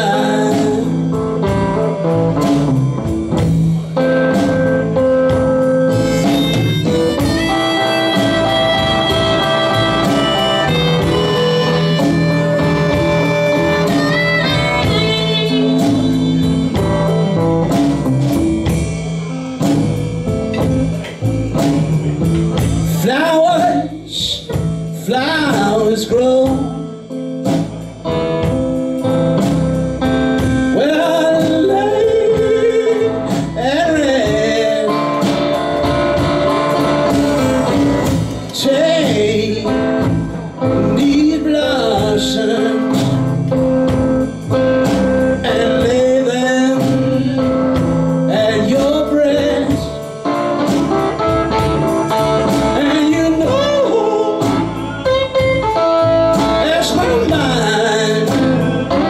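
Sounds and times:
drum kit: 0.0s - 59.0s
electric guitar: 0.0s - 59.0s
upright bass: 0.0s - 59.0s.

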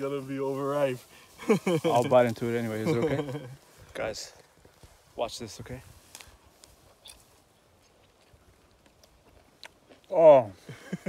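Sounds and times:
biting and chewing mango: 7.0s - 10.2s.

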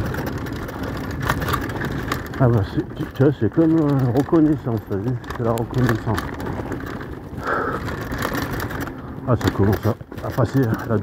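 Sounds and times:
bike rattling over bumps: 0.0s - 11.0s
bike tyre noise on dirt: 0.0s - 11.0s.

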